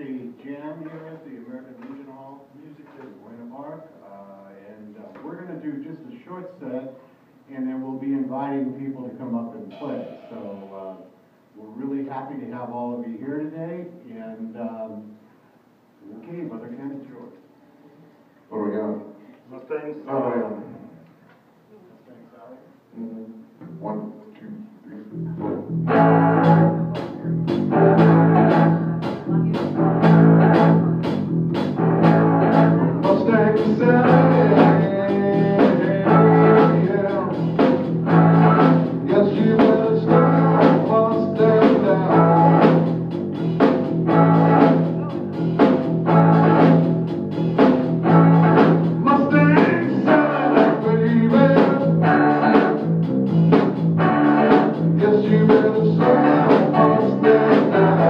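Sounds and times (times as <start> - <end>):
person counting in: 9.7 - 11.0
rock band playing: 25.1 - 58.0.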